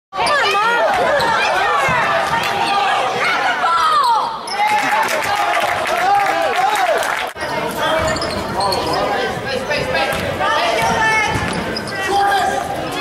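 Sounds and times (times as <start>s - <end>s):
sneakers squeaking on hardwood floor: 7.7s - 12.2s
basketball bouncing: 10.0s - 11.7s.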